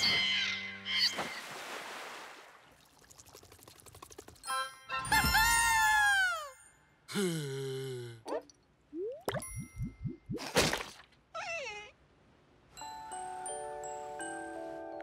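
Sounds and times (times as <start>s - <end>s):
music: 4.5s - 5.4s, 12.8s - 15.0s.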